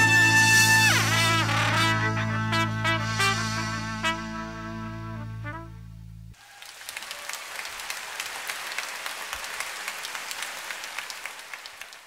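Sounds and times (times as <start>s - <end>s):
audience applauding: 6.4s - 12.0s.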